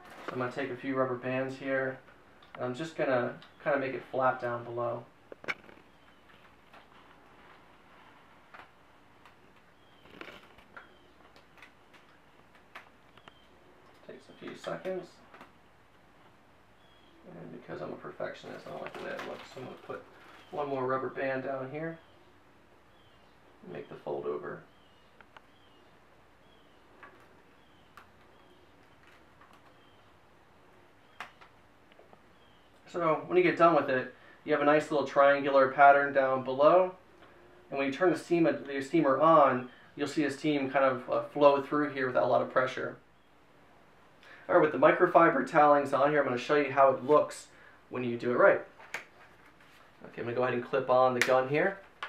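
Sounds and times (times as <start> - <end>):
cloth rustling: 5.5 - 12.8, 48.7 - 50.1.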